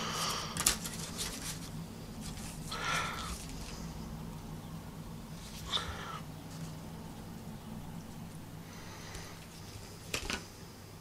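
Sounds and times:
sharp paper crackle: 0:00.2 - 0:02.8
paper rustling: 0:00.2 - 0:03.8.

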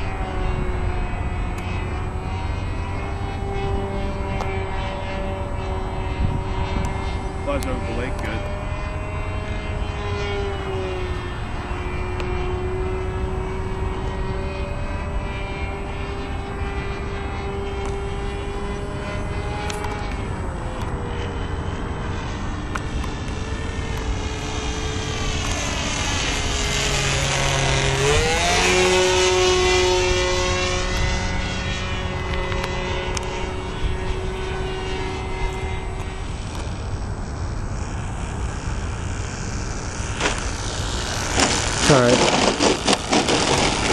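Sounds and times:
model airplane engine buzzing: 0:00.0 - 0:43.9.

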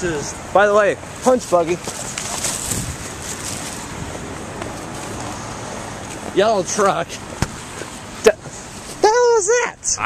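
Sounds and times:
road traffic passing: 0:00.0 - 0:10.0.

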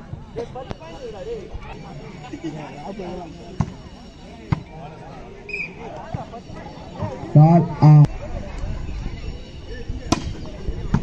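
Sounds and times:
voices and chatter: 0:00.0 - 0:11.0.

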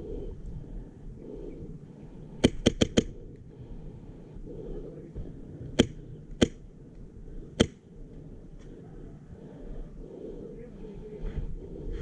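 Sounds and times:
airsoft rifle shots: 0:02.4 - 0:03.2.

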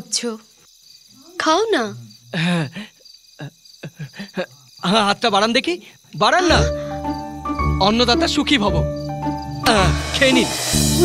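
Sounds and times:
crickets chirring: 0:00.0 - 0:10.8
person speaking: 0:03.9 - 0:07.0, 0:07.6 - 0:08.9, 0:09.6 - 0:10.6.

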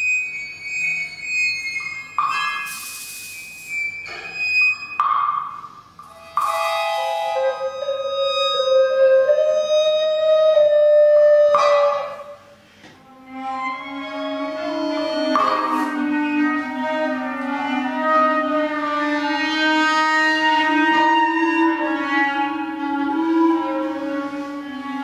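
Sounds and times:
chamber music held tones: 0:00.0 - 0:25.0.

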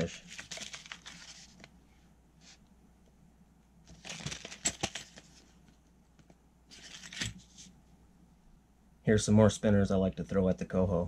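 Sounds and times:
plastic package crinkling: 0:00.1 - 0:01.7, 0:03.9 - 0:05.2.

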